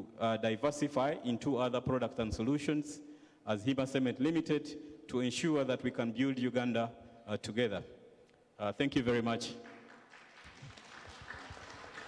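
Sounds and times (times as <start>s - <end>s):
faint audience applause: 9.4s - 12.0s.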